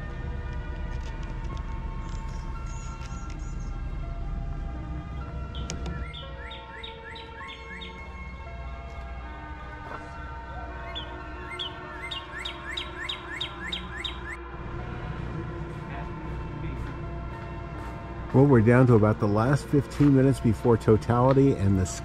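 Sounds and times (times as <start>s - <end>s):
soft background music: 0.0s - 22.0s
songbird whistling: 2.0s - 3.8s, 5.5s - 8.0s, 10.8s - 14.4s.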